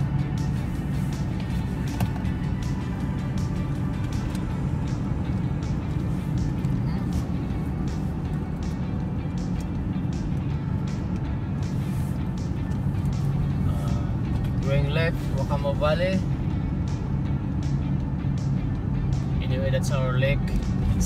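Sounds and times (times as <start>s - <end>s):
car road and engine rumble: 0.0s - 21.0s
music playing: 0.0s - 21.0s.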